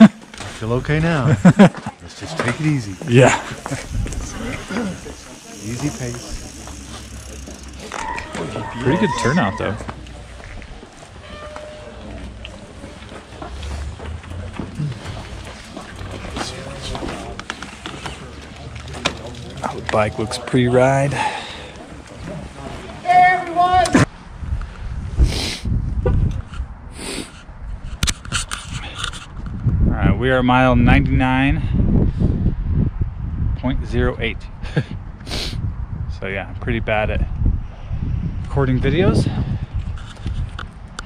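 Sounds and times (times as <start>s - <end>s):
bicycle tyres on pavement: 0.0s - 23.9s
steady low rumble: 3.2s - 7.9s
wind rumble on microphone: 3.5s - 5.3s, 24.0s - 41.0s.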